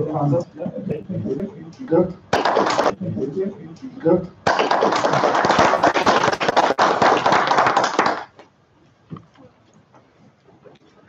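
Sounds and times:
audience applauding: 2.4 - 2.9, 4.5 - 8.4.

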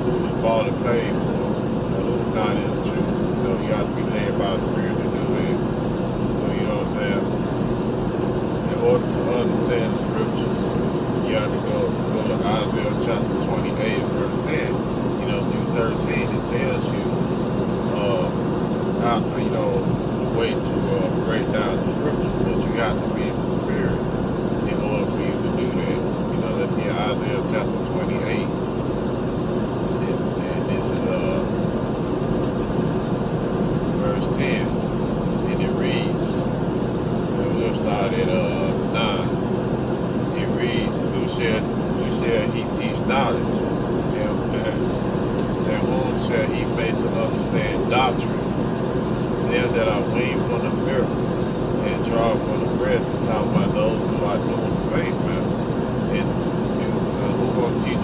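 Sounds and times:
faint voices: 0.0 - 5.7, 6.3 - 7.4, 8.6 - 17.2, 17.8 - 18.4, 19.0 - 28.6, 30.0 - 31.6, 33.9 - 34.8, 35.4 - 36.5, 37.3 - 39.4, 40.3 - 48.5, 49.4 - 55.5, 56.1 - 58.0
car road and engine noise: 0.0 - 58.0.

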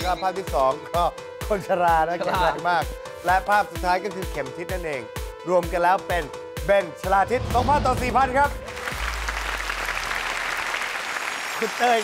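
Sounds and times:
audience applauding: 8.4 - 12.0.

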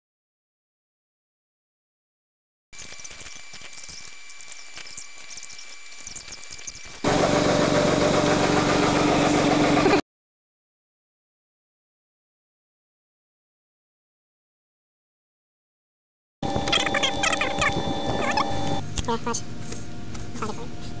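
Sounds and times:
thin high whine: 2.8 - 7.2, 16.4 - 18.8
car engine running: 7.0 - 10.0, 16.4 - 18.8.

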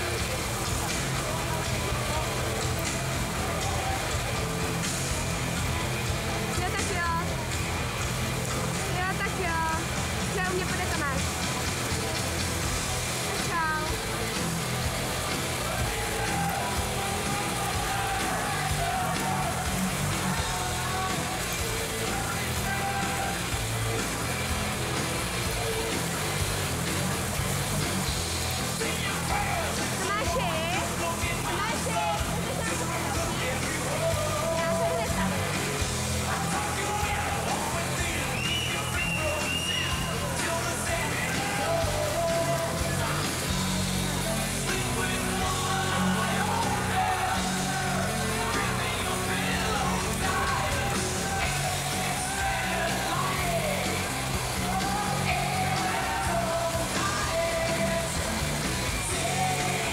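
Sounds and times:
crowd voices and shouts: 0.0 - 59.9
music playing: 0.0 - 59.9
water splashing: 0.0 - 59.9.

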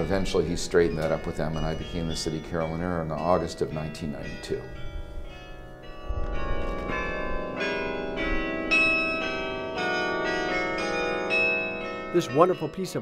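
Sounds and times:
carillon bells playing melody: 0.0 - 13.0.

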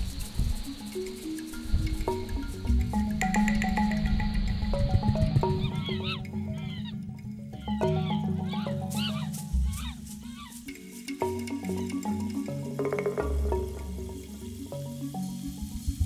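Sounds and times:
background music: 0.1 - 16.0
chimpanzee calls: 1.5 - 15.6.

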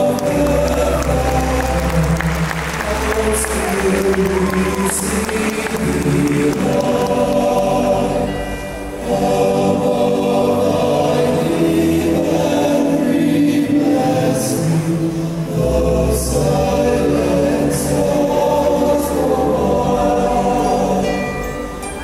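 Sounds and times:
choir singing held chords: 0.0 - 22.0
musical accompaniment: 0.0 - 22.0.

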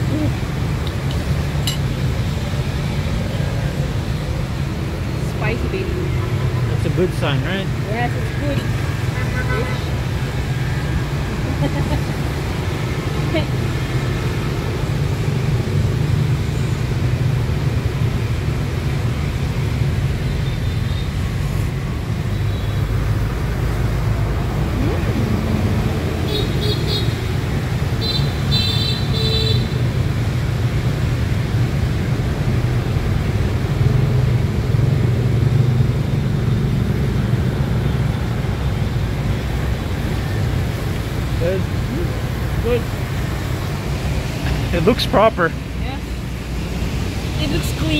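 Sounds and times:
street traffic rumble: 0.0 - 47.9.

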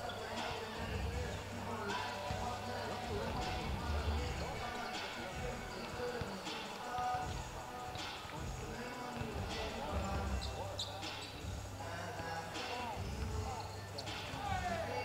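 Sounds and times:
music from speakers: 0.0 - 15.0
voices: 0.0 - 15.0
sneaker squeaks: 9.4 - 11.5, 12.6 - 15.0.

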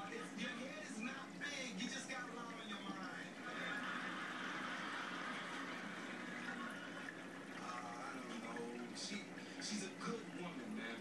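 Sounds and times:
running water rushing: 0.0 - 11.0.

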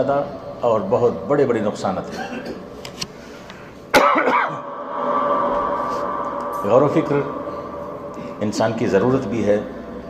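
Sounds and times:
person coughing: 2.1 - 2.7, 3.9 - 4.6.

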